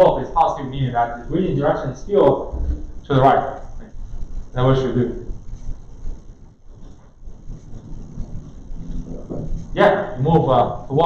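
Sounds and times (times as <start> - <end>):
low irregular room rumble: 0.0 - 11.0.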